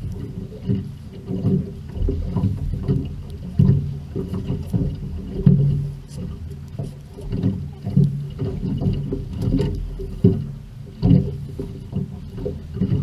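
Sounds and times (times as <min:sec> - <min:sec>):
water sloshing against boat hull: 0:00.0 - 0:13.0.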